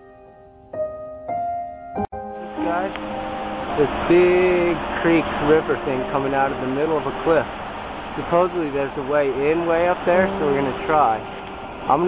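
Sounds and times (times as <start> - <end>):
piano music: 0.0 - 12.0
steady background hiss: 2.3 - 12.0
man talking outdoors: 3.7 - 7.5, 8.1 - 11.3.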